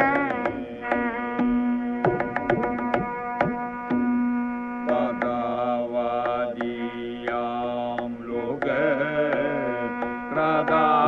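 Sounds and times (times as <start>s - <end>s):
mridangam drum strokes: 0.0s - 11.0s
ornamented vocal melody: 4.8s - 11.0s.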